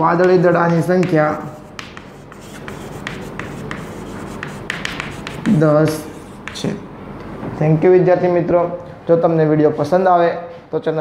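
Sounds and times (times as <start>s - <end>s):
chalk scratching on chalkboard: 0.0s - 6.8s.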